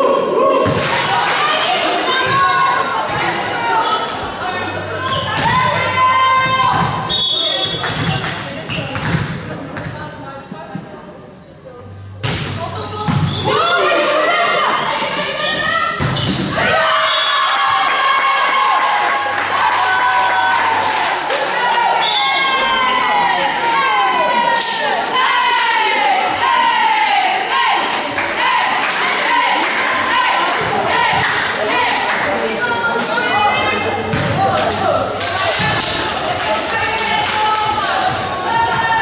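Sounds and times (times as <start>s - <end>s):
players calling and shouting: 0.0s - 9.4s, 11.8s - 39.0s.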